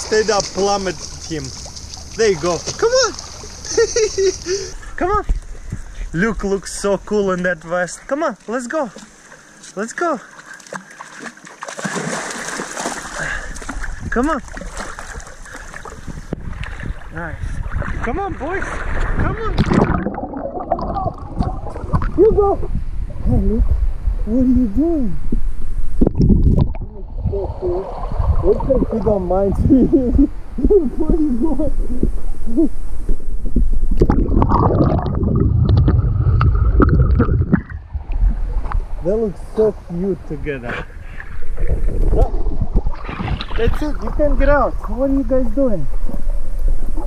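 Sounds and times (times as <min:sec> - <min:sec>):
water sloshing and splashing: 0:00.0 - 0:04.6, 0:08.4 - 0:22.2, 0:26.2 - 0:29.5, 0:41.0 - 0:44.6.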